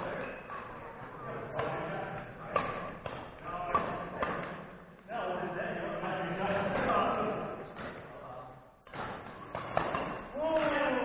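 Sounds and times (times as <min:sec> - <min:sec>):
voices in gym: 0:00.0 - 0:11.0
racket smacking shuttlecock: 0:08.8 - 0:10.7.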